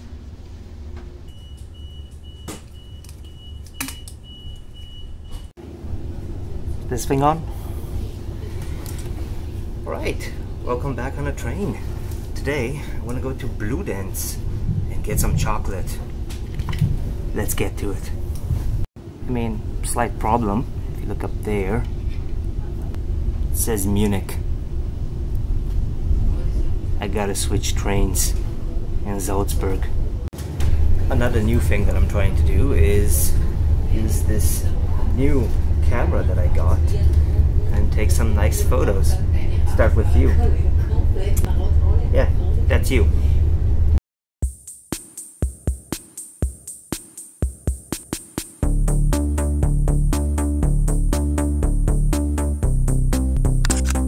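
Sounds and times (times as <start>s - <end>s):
train carriage interior hum: 0.0s - 44.0s.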